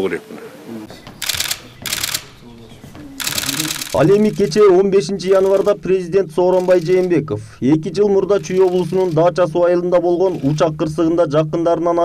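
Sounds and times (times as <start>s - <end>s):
low voices: 0.3s - 11.2s
camera shutters firing: 1.2s - 2.4s, 3.2s - 4.6s, 6.6s - 7.1s.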